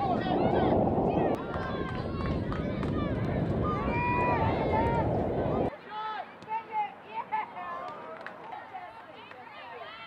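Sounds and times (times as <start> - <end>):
wind rumble on microphone: 0.0 - 5.7.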